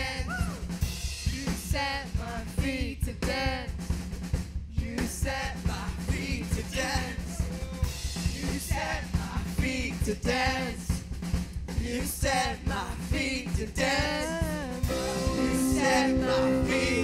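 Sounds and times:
drum kit beat: 0.0s - 17.0s
voices singing: 4.8s - 11.0s, 11.8s - 17.0s.

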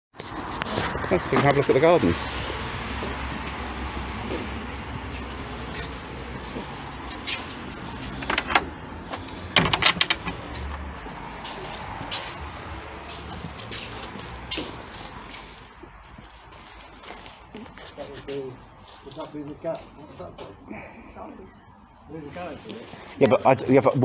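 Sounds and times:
footsteps: 0.2s - 21.0s
gate latch clicks and knocks: 9.6s - 10.4s.

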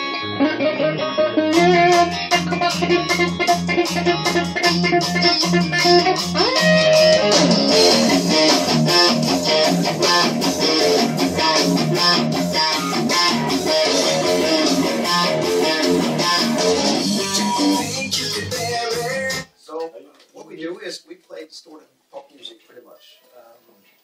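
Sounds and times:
electric guitar fast notes and chords: 0.0s - 19.4s.

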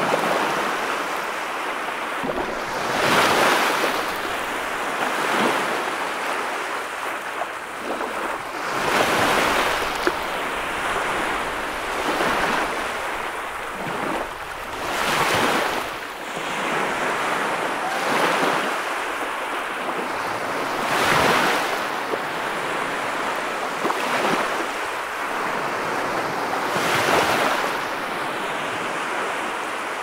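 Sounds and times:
waves crashing on beach: 0.0s - 30.0s.

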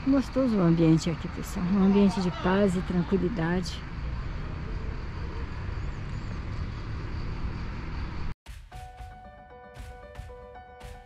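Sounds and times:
background music: 8.5s - 11.0s.

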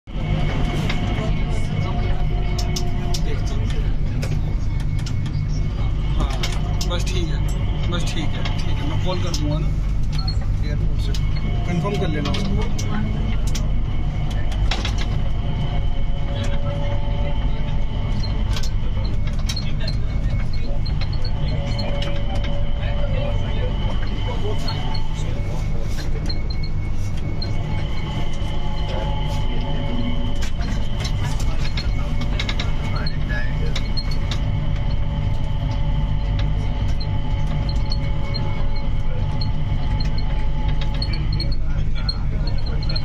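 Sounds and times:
train running low rumble: 0.0s - 43.0s
thin even whine: 0.1s - 43.0s.

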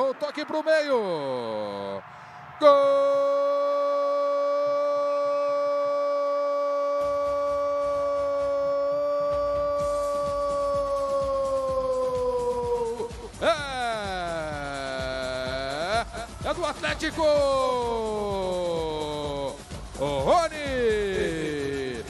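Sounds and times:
background noise: 0.0s - 22.0s
commentator shouting goal: 0.0s - 22.0s.

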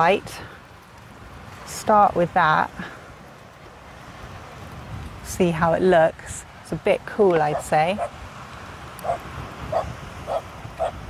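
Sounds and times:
animal barking: 9.0s - 11.0s.

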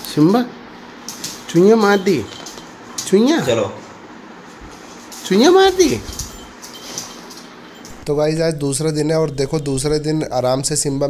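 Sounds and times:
dog clicking and rustling on floor: 1.0s - 3.3s, 4.6s - 8.0s.

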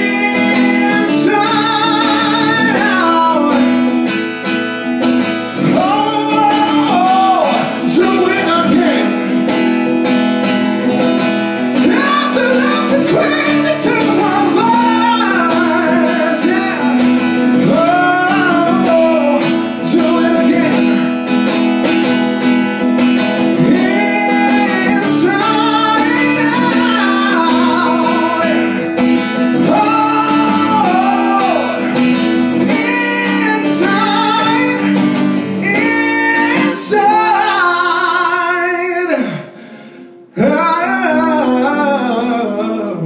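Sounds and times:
person singing with vibrato: 0.0s - 10.0s, 10.8s - 43.0s
strummed acoustic guitar: 0.0s - 43.0s.

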